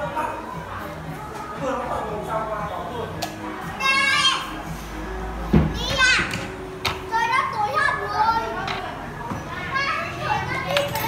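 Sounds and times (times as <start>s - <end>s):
children talking and calling out: 3.4s - 11.0s.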